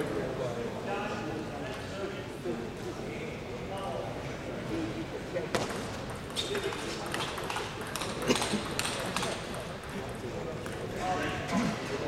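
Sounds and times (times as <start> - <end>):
table tennis ball clicking: 6.1 - 10.8.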